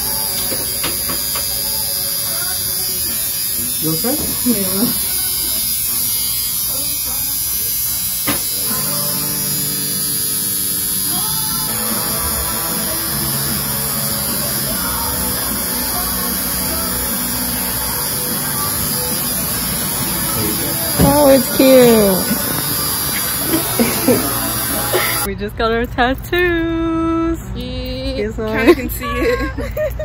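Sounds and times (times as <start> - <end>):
music: 0.0 - 25.3
tattoo machine buzzing: 0.0 - 25.3.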